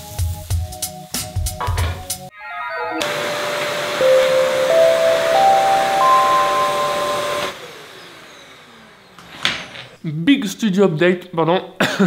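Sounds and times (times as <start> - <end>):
motor winding down whine: 2.4 - 9.7
vacuum cleaner running: 3.0 - 10.0.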